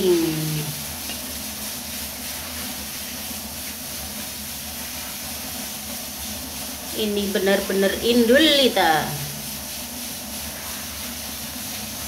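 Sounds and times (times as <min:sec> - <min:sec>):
fried rice sizzling in wok: 0:00.0 - 0:12.0.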